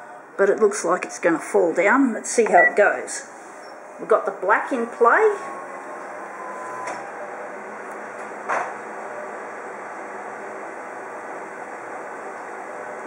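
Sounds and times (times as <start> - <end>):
office copier whirring: 3.3 - 13.0.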